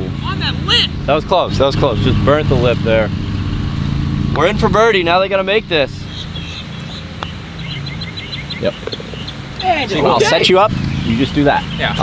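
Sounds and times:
steady low hum: 0:00.0 - 0:08.4
small birds chirping: 0:02.0 - 0:12.0.

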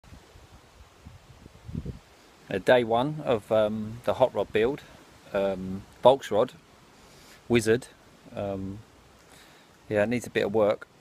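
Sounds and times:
wind buffeting microphone: 0:00.1 - 0:02.1.

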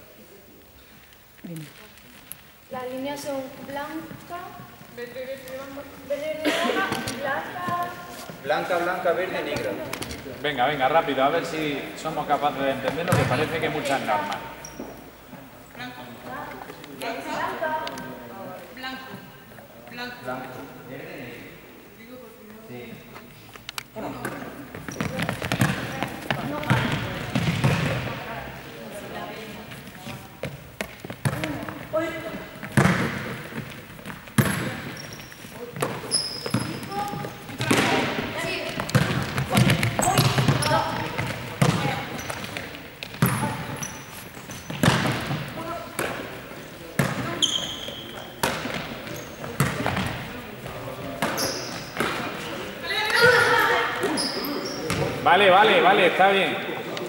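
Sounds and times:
players' voices: 0:00.0 - 0:57.0
ball bouncing on hall floor: 0:03.6 - 0:08.2, 0:12.4 - 0:15.5, 0:24.0 - 0:28.6, 0:29.7 - 0:55.3.

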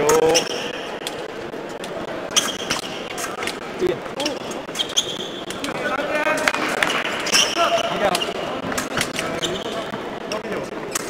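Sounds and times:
indistinct background voices: 0:00.0 - 0:11.0
shoe squeaks: 0:02.3 - 0:03.4, 0:04.2 - 0:05.7, 0:06.7 - 0:08.5, 0:09.2 - 0:09.9.

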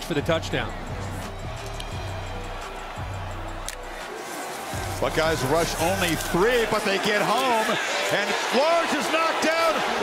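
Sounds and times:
hip-hop music with deep bass: 0:00.0 - 0:10.0.

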